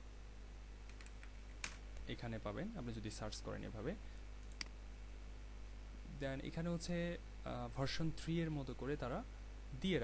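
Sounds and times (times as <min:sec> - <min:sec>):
low steady hum: 0:00.0 - 0:10.0
computer keyboard keystrokes: 0:00.9 - 0:01.8.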